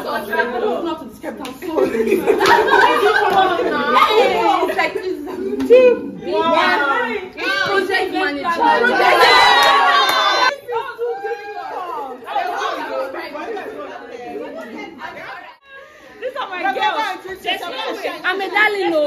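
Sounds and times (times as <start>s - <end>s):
people talking and calling out: 0.0s - 19.0s.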